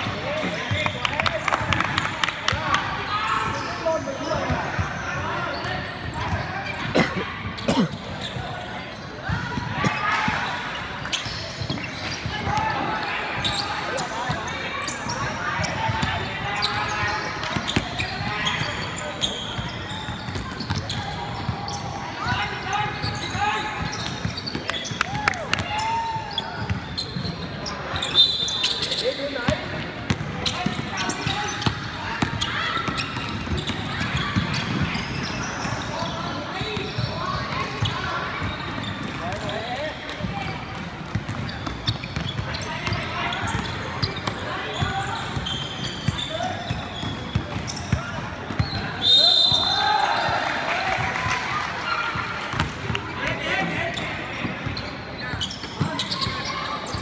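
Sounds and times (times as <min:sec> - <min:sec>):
chatter and shouts: 0:00.0 - 0:57.0.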